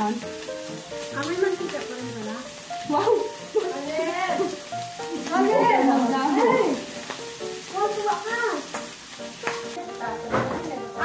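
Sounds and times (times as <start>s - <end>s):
food sizzling on a grill: 0.0s - 11.0s
people talking: 1.2s - 6.9s, 7.7s - 8.7s, 9.8s - 11.0s.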